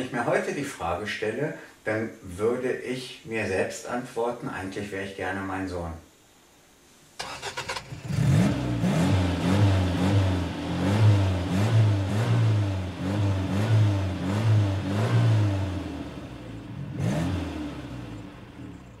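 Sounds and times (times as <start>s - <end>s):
car engine revving: 7.2s - 19.0s.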